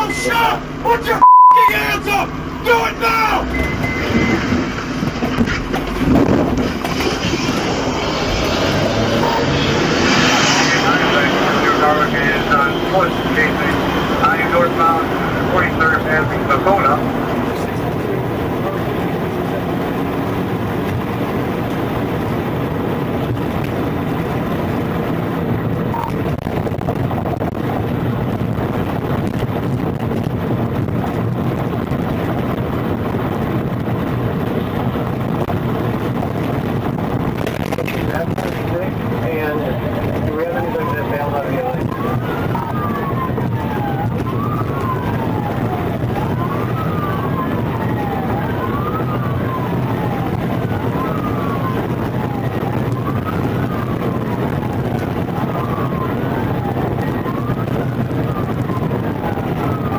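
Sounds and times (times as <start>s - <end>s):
car engine and road noise: 0.0s - 59.9s
indistinct voices: 8.0s - 19.1s.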